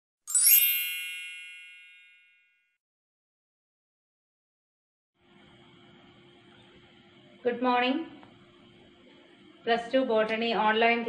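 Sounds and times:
bright chime ding: 0:00.3 - 0:02.5.

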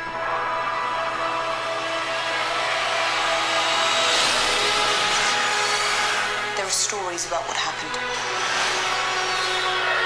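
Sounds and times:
held orchestral chord: 0:00.0 - 0:10.0
rushing swell: 0:00.0 - 0:10.0.

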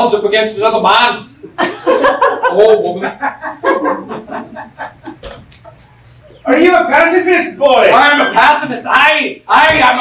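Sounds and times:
audience laughter: 0:01.6 - 0:05.2.

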